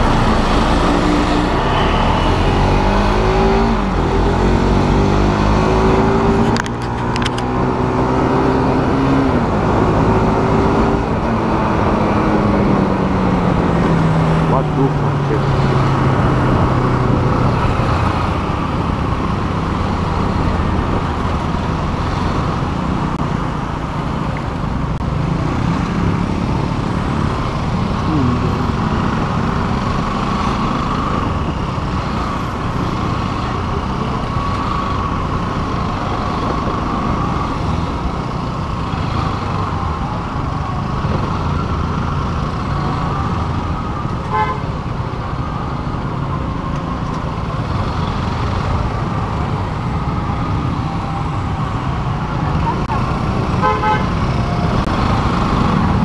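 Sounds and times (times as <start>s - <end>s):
surrounding traffic noise: 0.0s - 56.0s.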